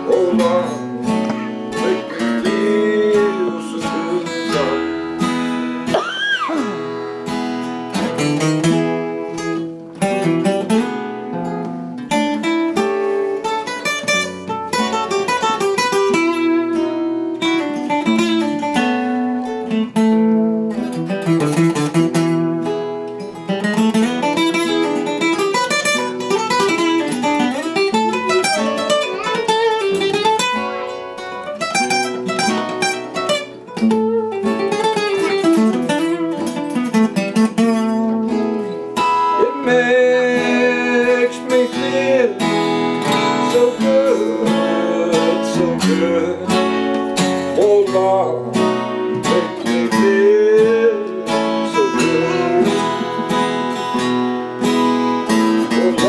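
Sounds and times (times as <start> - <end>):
picked guitar notes: 0.0 - 56.0
strummed acoustic guitar chords: 0.0 - 56.0.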